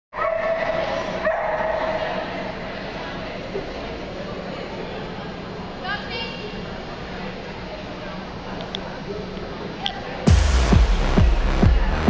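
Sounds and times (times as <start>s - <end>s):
dog barking: 0.2s - 2.1s.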